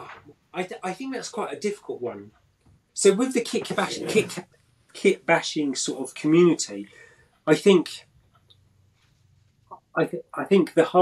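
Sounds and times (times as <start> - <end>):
man speaking: 0.0 - 2.3, 3.0 - 4.4, 5.0 - 8.0, 9.8 - 11.0
faint low hum: 0.0 - 11.0.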